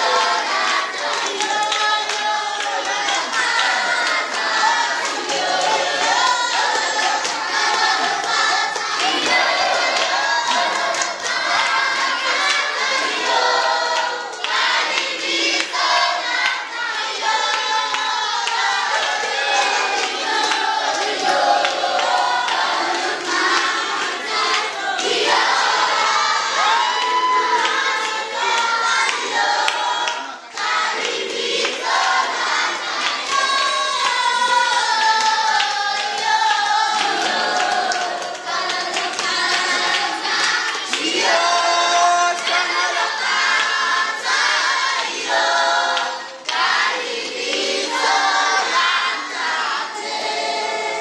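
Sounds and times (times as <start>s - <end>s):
children singing together: 0.0s - 51.0s.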